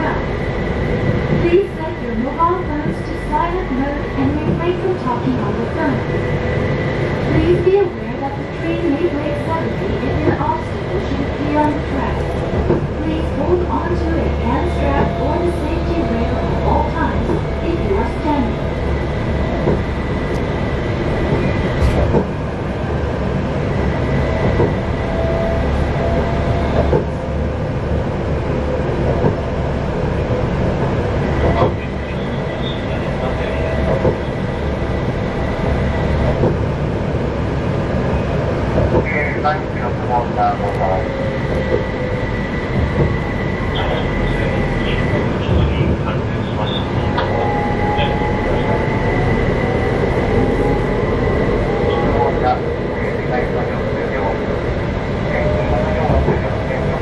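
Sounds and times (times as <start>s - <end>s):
tram motor whine: 0.0s - 57.0s
tram wheels rumbling on rail: 0.0s - 57.0s.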